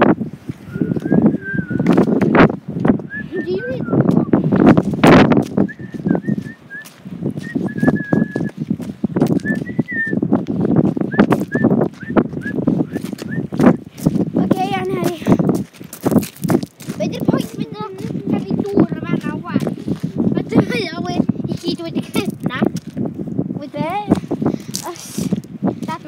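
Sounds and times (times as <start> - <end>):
footsteps on gravel: 1.8 - 3.0, 4.1 - 26.0.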